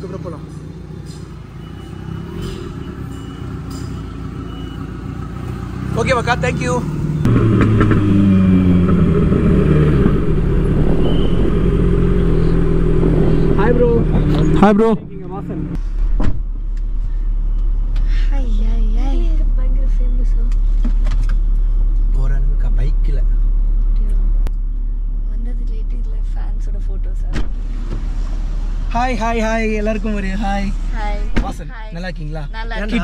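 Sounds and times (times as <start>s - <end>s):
vehicle engine idling: 0.0s - 33.0s.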